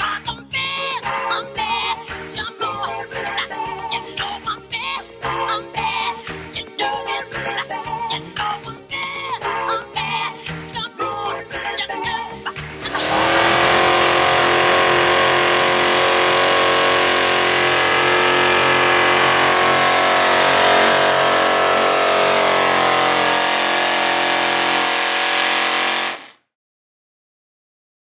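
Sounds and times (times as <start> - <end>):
tractor engine howling under load: 12.8 - 26.3.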